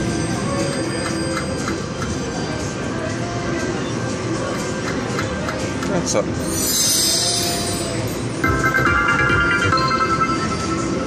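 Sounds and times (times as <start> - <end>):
slot machine music: 6.4 - 11.0.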